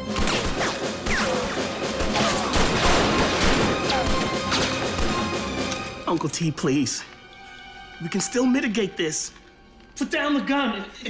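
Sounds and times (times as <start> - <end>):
action film music score: 0.0 - 11.0.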